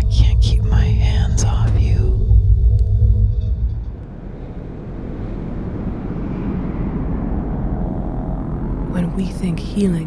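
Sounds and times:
low rushing rumble: 0.0s - 10.0s.

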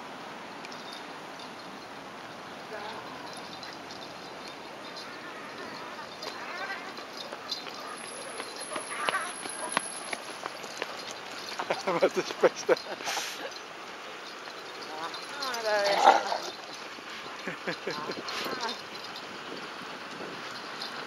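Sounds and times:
dog paws on paving: 2.9s - 21.0s
footsteps on paving: 6.2s - 11.9s.

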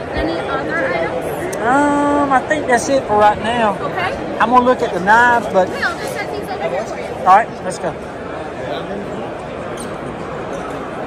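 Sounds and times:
indistinct crowd voices: 0.0s - 11.0s.

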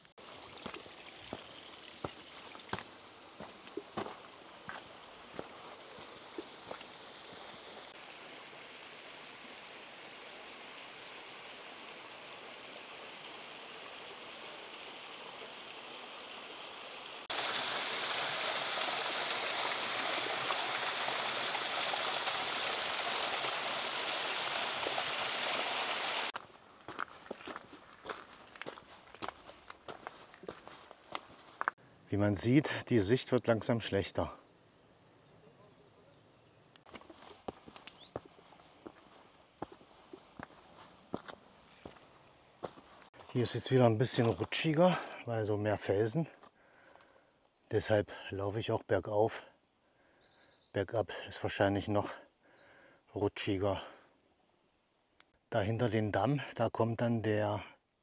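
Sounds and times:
mountain stream rushing: 0.0s - 26.4s
footsteps on rocky trail: 0.6s - 7.0s, 26.3s - 31.8s, 36.9s - 43.4s
loud rush of water: 5.2s - 26.4s.

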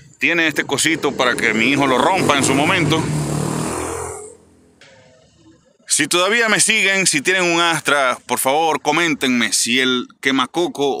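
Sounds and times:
vehicle passing with low hum: 0.0s - 5.6s.

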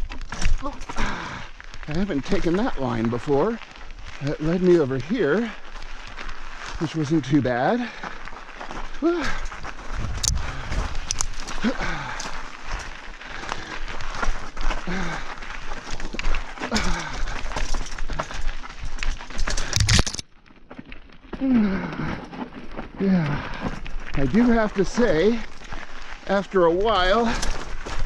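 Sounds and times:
bike rattling: 0.0s - 28.0s
tyres crunching over gravel: 0.0s - 28.0s
sighing breaths: 0.4s - 2.1s, 5.1s - 19.9s, 21.4s - 26.2s
microphone noise: 10.0s - 11.3s.

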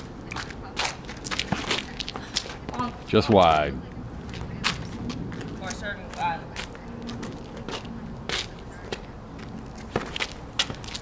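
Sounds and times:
ball bouncing on asphalt: 4.3s - 11.0s
sneaker steps and scuffs: 4.3s - 11.0s.

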